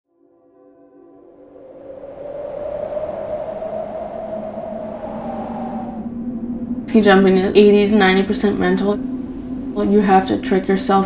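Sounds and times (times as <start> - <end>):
droning tone: 0.2 - 11.0
rushing wind: 1.3 - 11.0.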